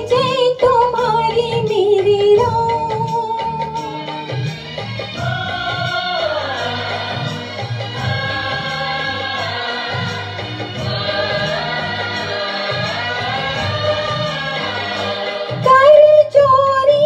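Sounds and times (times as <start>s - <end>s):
woman singing into a microphone: 0.0s - 4.5s, 15.4s - 17.0s
karaoke backing track with beat: 0.0s - 17.0s.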